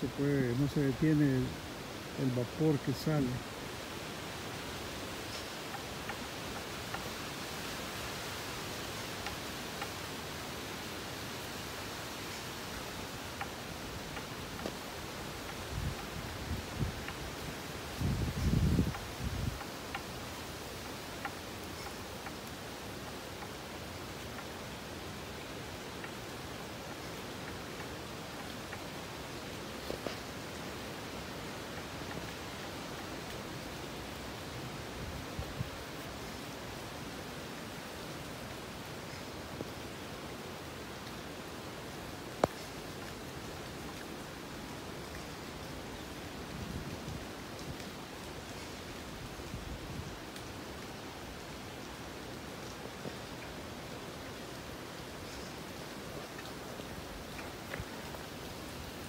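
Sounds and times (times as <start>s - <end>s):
wind: 0.0s - 59.0s.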